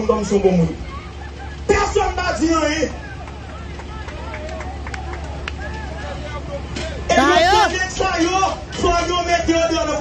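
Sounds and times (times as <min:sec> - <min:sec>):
chatter of many voices: 0:00.0 - 0:10.0
street noise: 0:00.0 - 0:10.0.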